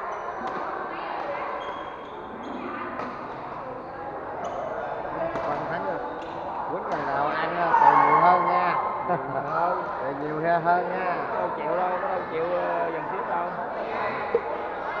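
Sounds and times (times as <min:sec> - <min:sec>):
chatter of onlookers: 0:00.0 - 0:15.0
racket hitting shuttlecock: 0:00.4 - 0:00.7, 0:03.0 - 0:03.4, 0:05.3 - 0:07.1.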